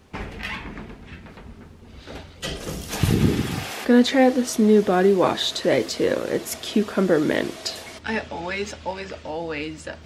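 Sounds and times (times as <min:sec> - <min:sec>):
shower water spraying: 0:02.6 - 0:08.0.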